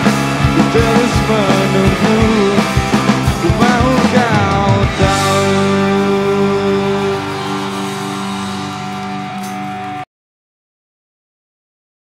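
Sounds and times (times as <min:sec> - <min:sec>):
rock band chord ringing out: 0:00.0 - 0:10.0.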